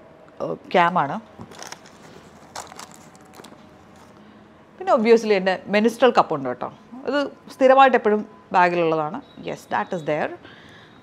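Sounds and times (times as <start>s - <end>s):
light clicks and crinkles: 1.4s - 4.2s
rummaging in a leather handbag: 1.4s - 4.2s.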